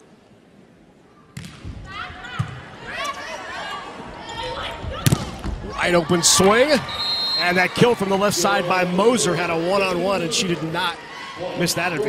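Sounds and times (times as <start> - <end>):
crowd yelling and cheering: 1.9 - 12.0
volleyball hits: 5.0 - 5.7.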